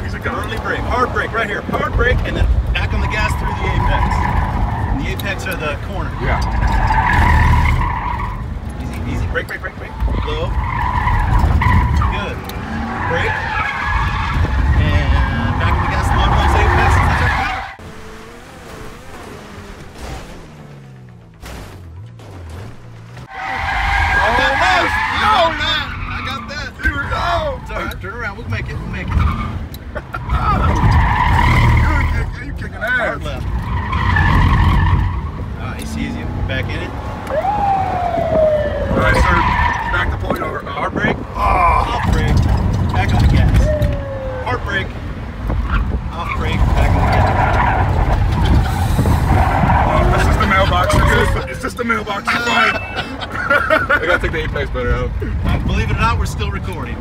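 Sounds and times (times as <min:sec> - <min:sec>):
engine and road rumble: 0:00.0 - 0:57.0
tires squealing: 0:00.0 - 0:57.0.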